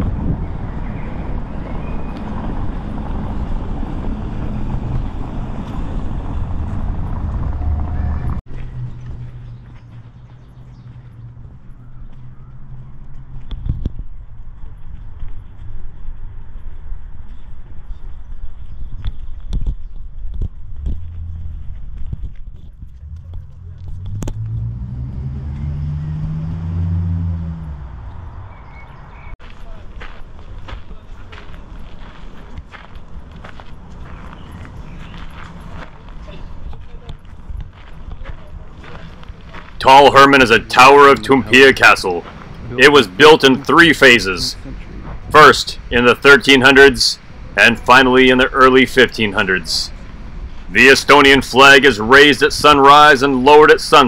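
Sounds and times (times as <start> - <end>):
motor vehicle passing: 0.0 - 18.0, 20.5 - 54.0
low rumble of traffic: 0.0 - 54.0.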